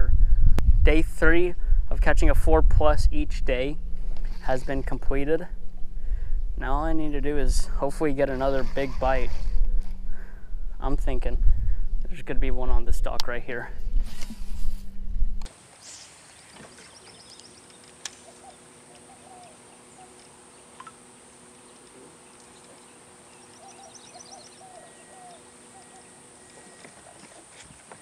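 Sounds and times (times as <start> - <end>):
loud low microphone rumble: 0.0 - 15.5
faint steady hum: 0.0 - 28.0
small birds chirping: 15.8 - 28.0.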